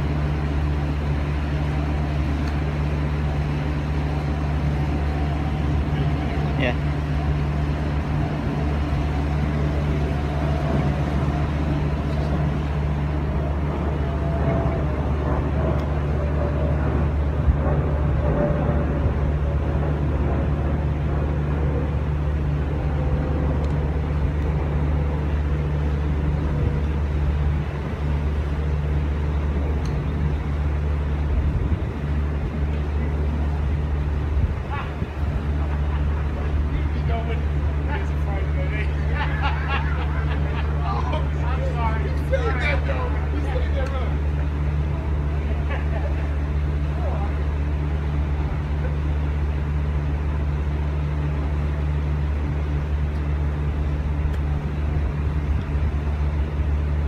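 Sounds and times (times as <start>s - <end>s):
low mechanical drone: 0.0s - 57.0s
faint voices: 4.8s - 18.3s, 32.4s - 49.3s.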